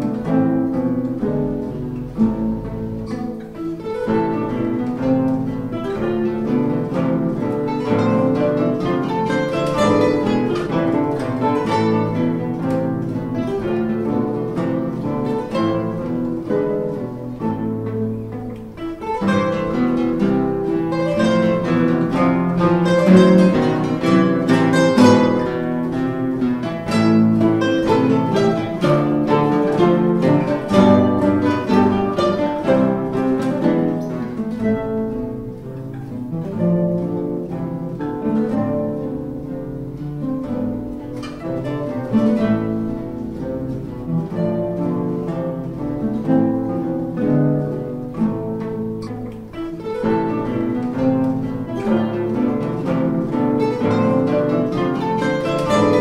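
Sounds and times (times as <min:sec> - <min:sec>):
classical guitars playing together: 0:00.0 - 0:56.0.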